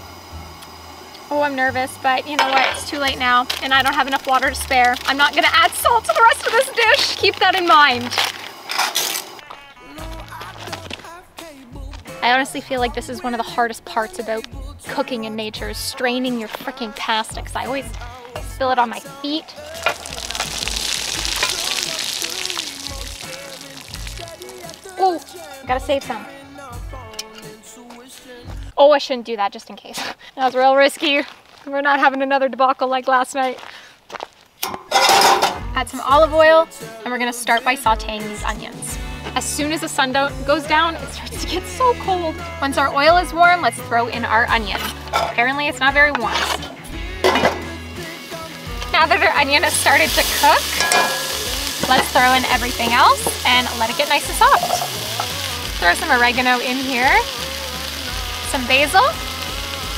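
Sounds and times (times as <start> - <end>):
background music: 0.0 - 29.3, 34.6 - 59.9
pot lid clinking against pot: 2.4 - 3.0, 34.6 - 35.6, 45.1 - 45.4, 47.2 - 47.6, 50.8 - 52.0, 54.5 - 55.0
water splattering onto rocks: 2.5 - 9.3, 19.6 - 25.6, 48.7 - 59.9.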